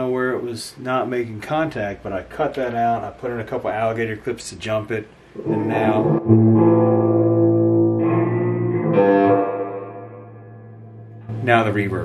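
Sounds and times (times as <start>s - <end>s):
electric guitar chords with reverb: 5.4s - 11.8s.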